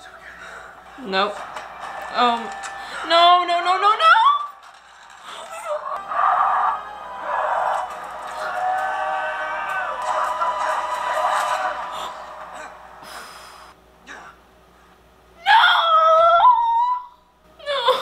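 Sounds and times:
film score music: 0.0s - 13.7s.

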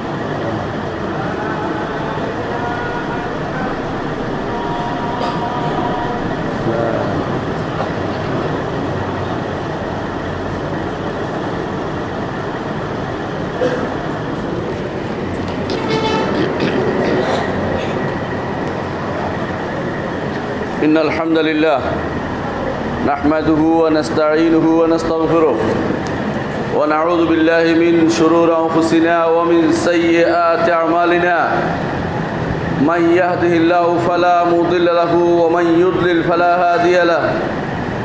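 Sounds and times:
rumbling background din: 0.0s - 38.0s
faint indistinct voices: 0.1s - 20.8s, 22.0s - 23.0s.

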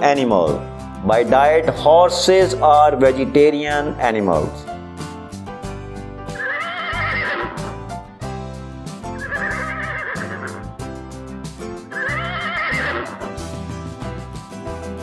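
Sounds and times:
background music: 0.0s - 15.0s
horse whinnying: 6.3s - 7.8s, 9.2s - 10.7s, 11.9s - 13.3s.

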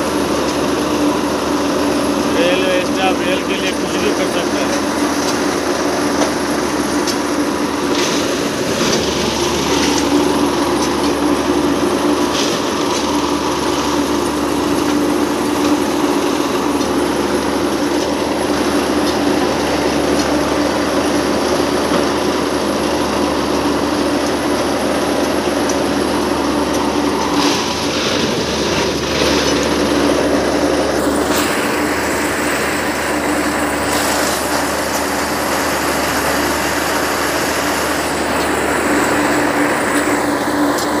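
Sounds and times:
track machine engine and hydraulic hum: 0.0s - 41.0s.

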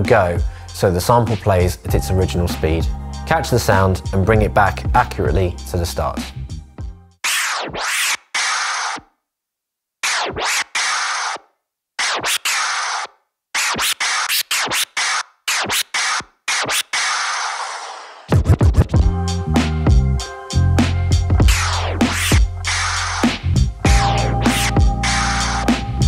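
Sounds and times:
vinyl scratching: 7.2s - 9.1s, 10.0s - 19.9s, 20.8s - 26.0s
drum beat: 18.3s - 20.1s, 20.8s - 25.9s.

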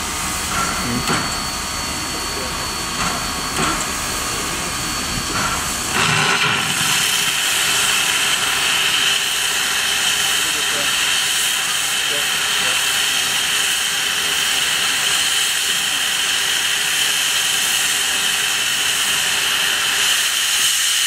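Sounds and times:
steam locomotive hissing: 0.0s - 21.0s.

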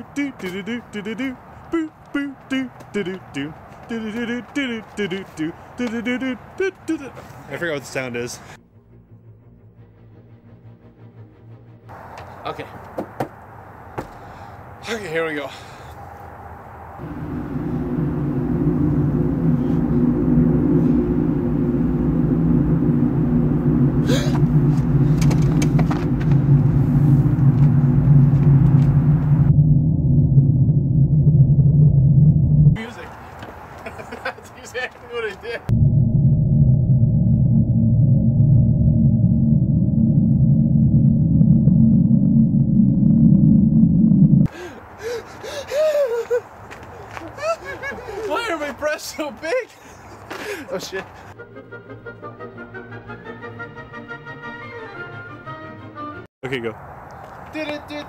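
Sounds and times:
low droning rumble: 0.0s - 12.1s, 16.9s - 33.0s, 35.6s - 44.5s
person gasping: 24.0s - 24.4s, 44.5s - 46.2s, 50.3s - 50.7s.

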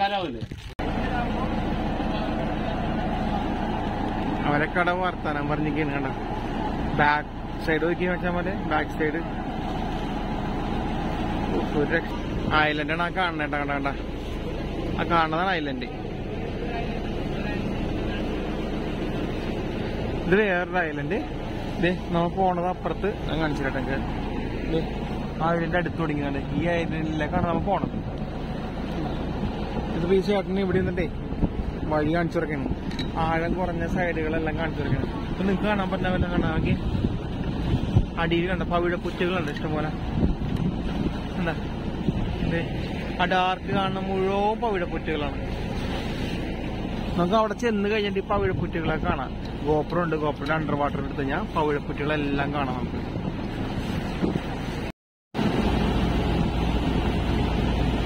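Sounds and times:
people talking: 0.0s - 2.9s, 4.4s - 6.2s, 7.0s - 9.3s, 11.5s - 14.0s, 14.9s - 18.4s, 20.2s - 24.1s, 24.7s - 28.0s, 29.9s - 31.2s, 31.8s - 36.9s, 38.1s - 40.0s, 41.3s - 41.6s, 42.4s - 45.4s, 47.2s - 52.9s
boat engine droning: 0.8s - 58.0s.

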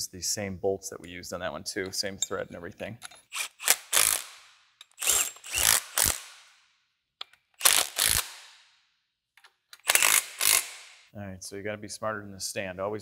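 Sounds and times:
impact wrench bursts: 3.3s - 6.6s, 7.6s - 8.6s, 9.8s - 11.0s.

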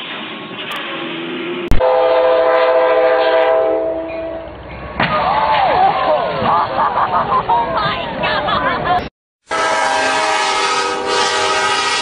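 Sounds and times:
train running noise: 0.0s - 12.0s
locomotive air horn: 1.7s - 4.5s, 9.4s - 12.0s.

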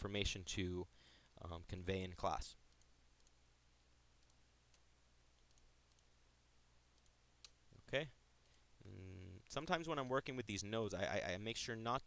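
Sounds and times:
low steady hum: 0.0s - 12.0s
faint computer mouse clicks: 2.7s - 3.4s, 4.2s - 6.1s, 6.9s - 7.6s.

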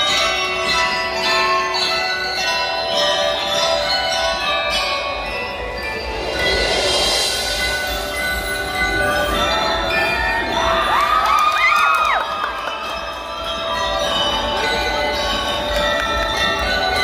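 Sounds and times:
glockenspiels ringing out a tune: 0.0s - 17.0s
crowd cheering: 10.4s - 15.2s
children shouting: 10.5s - 13.0s.

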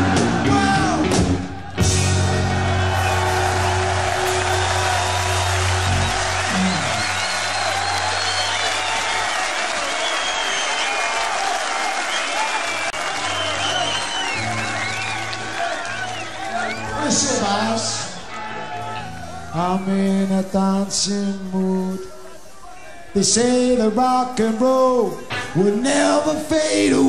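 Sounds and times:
crowd cheering clapping whistling: 1.7s - 20.4s.

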